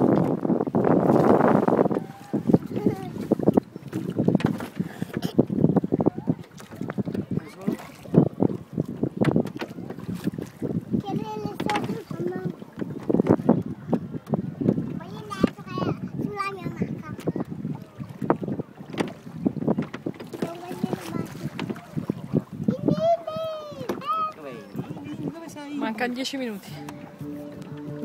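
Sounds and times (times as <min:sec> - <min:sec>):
water splashing: 0:00.0 - 0:28.0
wind buffeting microphone: 0:00.0 - 0:28.0
oars knocking in oarlocks: 0:01.9 - 0:05.5, 0:06.4 - 0:15.8, 0:17.2 - 0:22.6.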